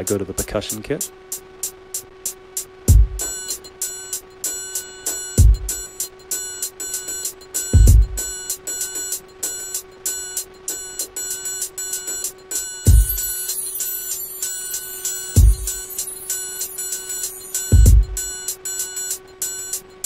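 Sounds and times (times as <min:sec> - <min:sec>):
hissy high percussion: 0:00.0 - 0:20.0
deep kick drums: 0:02.9 - 0:03.3, 0:05.4 - 0:05.8, 0:07.8 - 0:08.3, 0:12.9 - 0:13.3, 0:15.4 - 0:15.8, 0:17.7 - 0:18.3
bell-like percussion hits: 0:03.0 - 0:09.8, 0:10.8 - 0:19.8.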